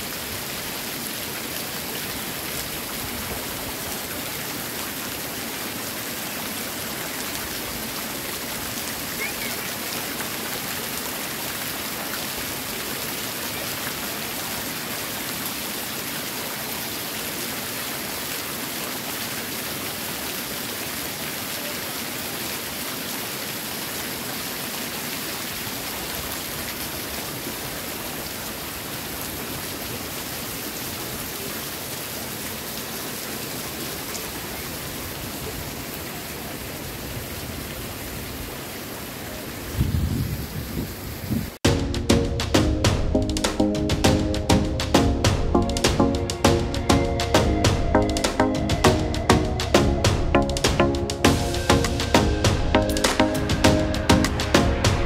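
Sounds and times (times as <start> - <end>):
loud low thumps: 41.6 - 55.0.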